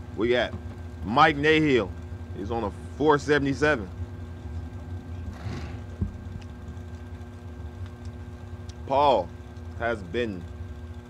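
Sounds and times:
dragster engines idling: 0.0s - 11.0s.

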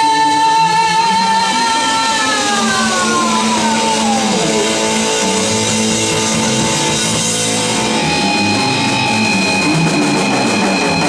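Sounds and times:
high note sliding down in pitch: 0.0s - 11.0s
live rock band: 0.0s - 11.0s.

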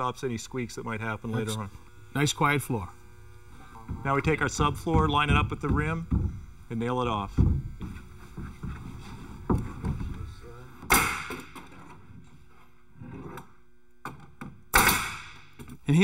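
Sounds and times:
nail gun firing: 10.9s - 11.6s, 14.7s - 15.6s.

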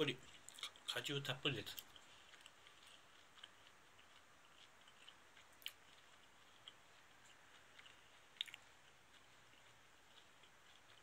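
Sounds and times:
wet chewing: 0.0s - 11.0s.

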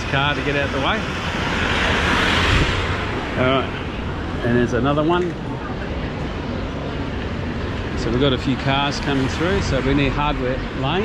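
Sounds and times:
car engine and tyre noise: 0.0s - 11.0s.

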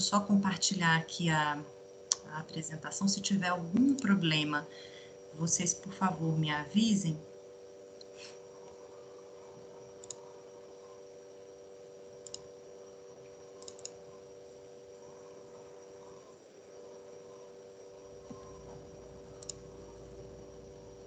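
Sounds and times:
computer mouse clicks: 10.0s - 10.3s, 12.2s - 12.5s, 13.6s - 14.0s, 18.3s - 19.9s
low hum: 14.9s - 21.0s.

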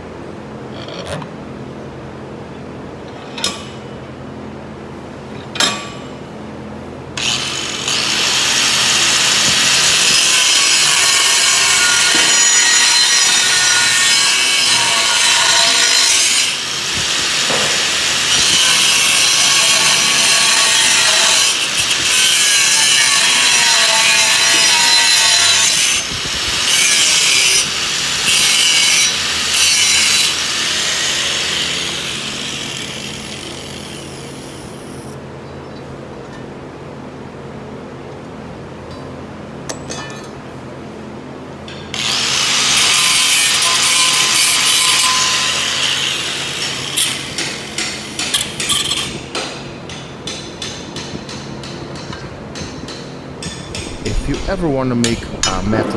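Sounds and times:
angle grinder cutting steel: 7.2s - 35.1s, 41.9s - 49.1s.

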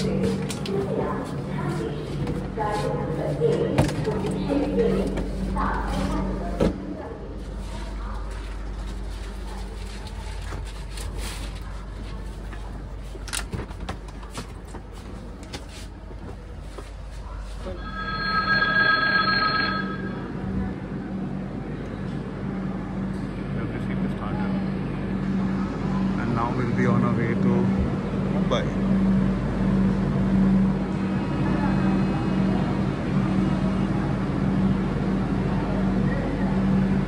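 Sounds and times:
people's voices: 0.0s - 13.4s
ringing electronic tone: 17.8s - 20.4s.

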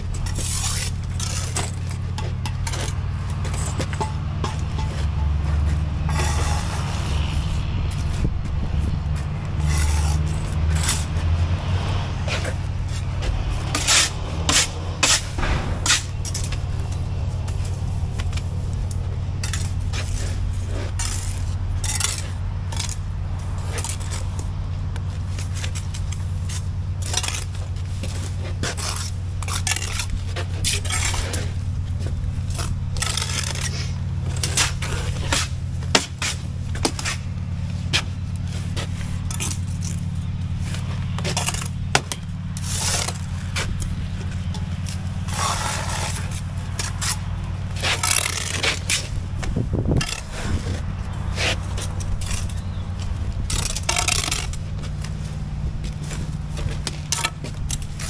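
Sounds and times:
low mechanical hum: 0.0s - 58.0s
trowels scraping mortar: 0.1s - 58.0s.

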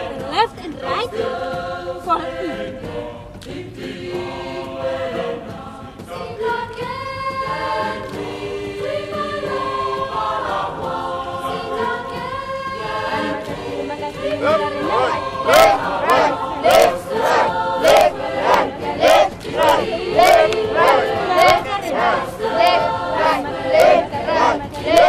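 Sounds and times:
group of voices singing: 0.0s - 25.0s.

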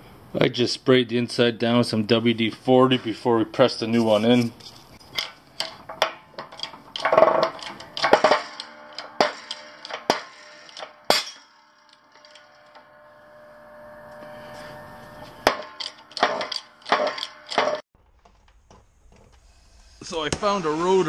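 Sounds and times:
metal scraping bursts: 2.9s - 17.8s
metal clicks and knocks: 5.0s - 11.2s
faint steady tone: 7.4s - 17.6s.

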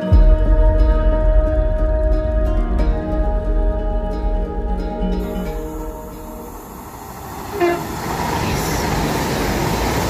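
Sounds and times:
train rushing past: 2.8s - 10.0s
train horn: 7.5s - 8.8s.

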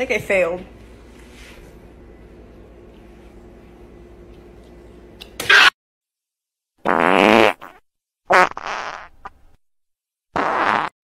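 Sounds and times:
short fart sounds: 6.8s - 9.2s, 10.3s - 11.0s.

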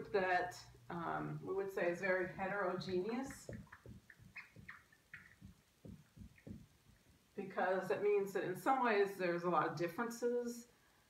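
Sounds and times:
marker squeaking on whiteboard: 1.8s - 7.3s.

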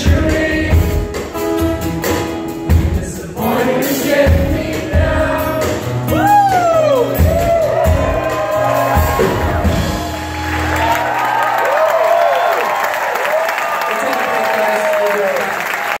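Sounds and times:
drums and acoustic guitar: 0.0s - 11.5s
shouts and whoops: 6.1s - 15.4s
audience applauding: 7.2s - 16.0s.

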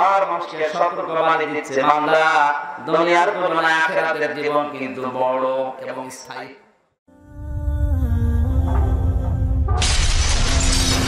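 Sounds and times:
music with sustained notes: 7.1s - 11.0s
glass shattering: 9.8s - 11.0s.

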